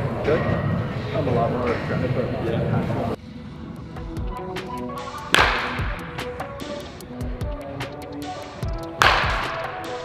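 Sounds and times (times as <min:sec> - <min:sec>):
background music with steady beat: 0:03.2 - 0:10.0
baseball bat hitting ball: 0:05.2 - 0:06.8, 0:08.9 - 0:10.0.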